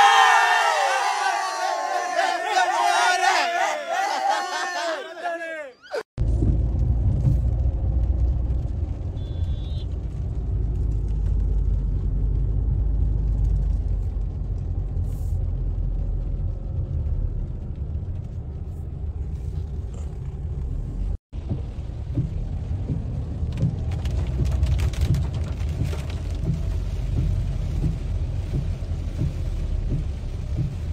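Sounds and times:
car road and engine noise: 6.2s - 30.9s.

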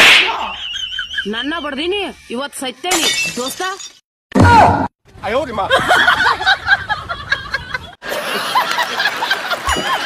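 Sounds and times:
man laughing heartily: 5.7s - 10.0s.

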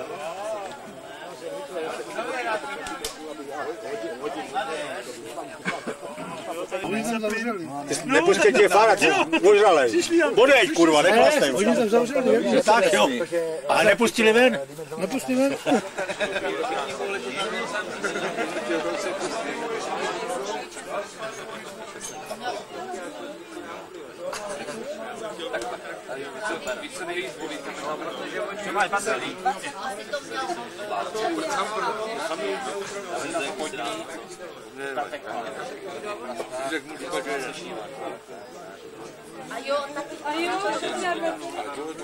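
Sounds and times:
indistinct group chatter: 0.0s - 42.0s
people talking over one another: 0.0s - 42.0s.

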